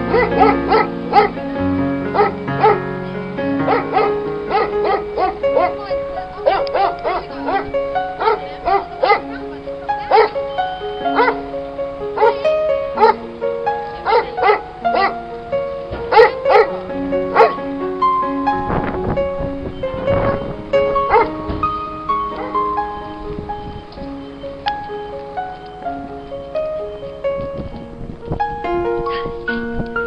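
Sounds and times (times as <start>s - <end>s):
background music with held notes: 0.0s - 30.0s
dog barking: 0.1s - 1.4s, 2.1s - 2.8s, 3.7s - 9.4s, 10.0s - 10.4s, 11.1s - 11.4s, 12.2s - 12.4s, 13.0s - 13.2s, 14.0s - 15.2s, 16.1s - 17.6s, 21.0s - 21.4s.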